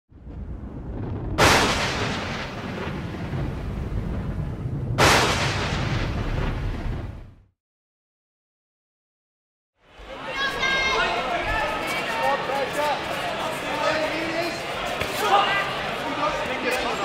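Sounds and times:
low rumble: 0.1 - 7.5
loud boom hits: 0.2 - 7.5.

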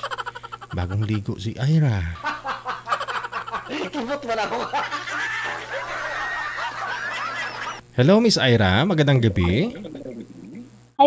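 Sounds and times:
woman giggling: 9.4 - 10.7.

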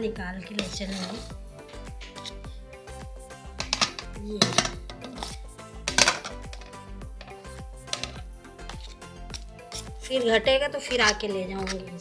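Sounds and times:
background music with steady beat: 0.0 - 12.0
metal spoon scraping steel bowl: 0.4 - 12.0.

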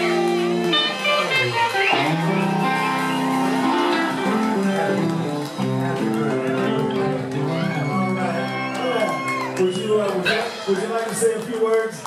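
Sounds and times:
electric guitars playing: 0.0 - 11.4.

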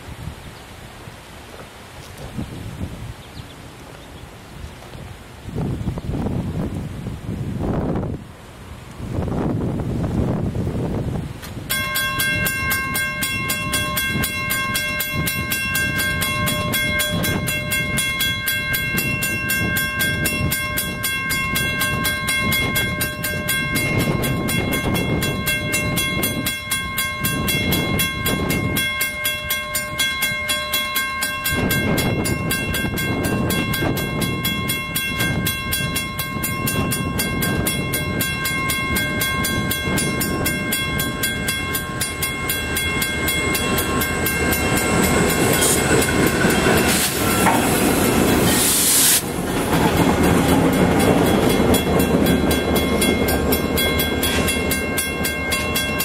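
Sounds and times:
diesel locomotives rumbling: 0.0 - 56.0
steady high tone: 11.7 - 56.0.

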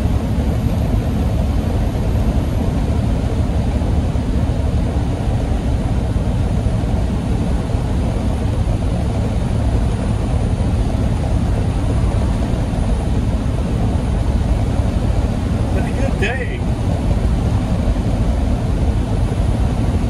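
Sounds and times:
truck engine and tyres drone: 0.0 - 20.0.

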